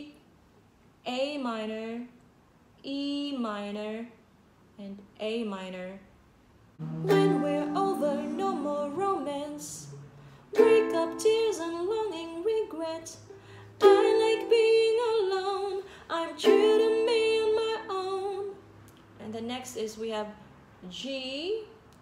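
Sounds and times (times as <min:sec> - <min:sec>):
ukulele strumming: 0:06.8 - 0:18.5
woman singing: 0:06.8 - 0:18.6.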